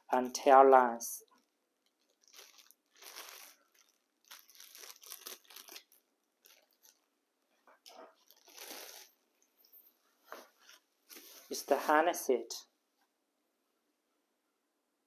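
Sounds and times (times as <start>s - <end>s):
plastic packaging crinkling: 1.3s - 9.2s.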